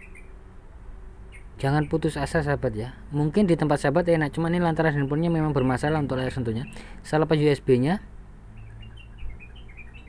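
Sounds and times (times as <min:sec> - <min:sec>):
small bird chirping: 0:00.0 - 0:00.5, 0:01.2 - 0:02.4, 0:08.4 - 0:10.0.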